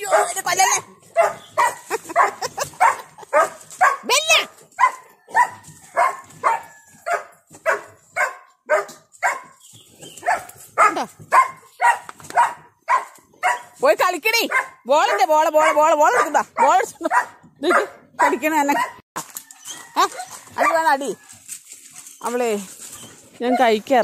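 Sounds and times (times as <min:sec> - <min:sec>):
dog yelping cry: 0:00.0 - 0:09.5, 0:10.2 - 0:13.8, 0:14.5 - 0:19.0, 0:19.6 - 0:20.9
dog barking: 0:00.0 - 0:09.6, 0:10.2 - 0:13.8, 0:14.4 - 0:19.0, 0:20.1 - 0:20.9, 0:23.4 - 0:23.8.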